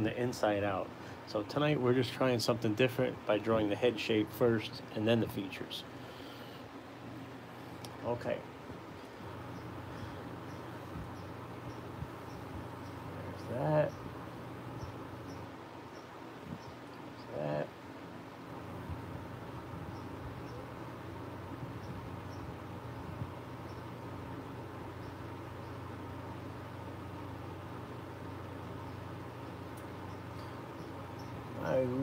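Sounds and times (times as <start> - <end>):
electric fan humming: 0.0 - 32.0.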